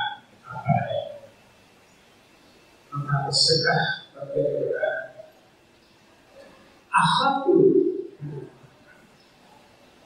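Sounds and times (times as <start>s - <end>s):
man speaking: 0.0s - 1.2s, 2.9s - 5.2s, 6.9s - 8.6s.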